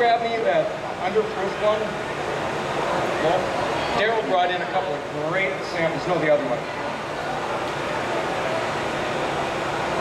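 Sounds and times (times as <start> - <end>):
faint voices: 0.0 - 10.0
outdoor market background noise: 0.0 - 10.0.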